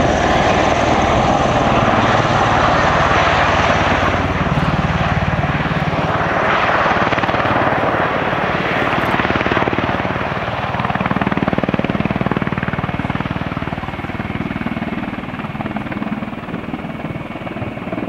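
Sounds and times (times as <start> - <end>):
turbine engines noise: 0.0 - 18.0.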